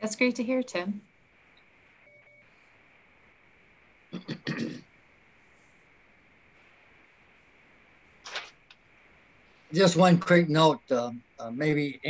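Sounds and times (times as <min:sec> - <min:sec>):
faint line hiss: 0:00.0 - 0:12.0.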